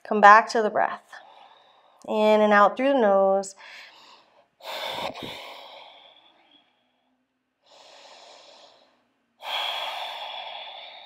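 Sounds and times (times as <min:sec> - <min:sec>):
person breathing through the nose: 0:03.6 - 0:06.9, 0:07.6 - 0:11.0.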